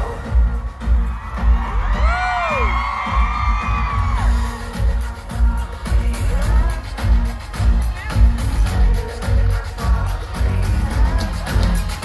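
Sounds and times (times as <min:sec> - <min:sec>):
heavy pulsing bass beat: 0:00.0 - 0:12.0
live pop concert music: 0:00.0 - 0:12.0.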